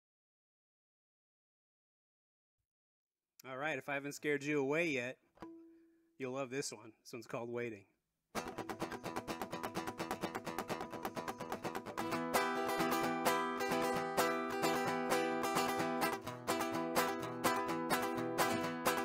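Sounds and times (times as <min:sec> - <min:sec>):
acoustic guitar strummed fast: 0:08.4 - 0:19.0.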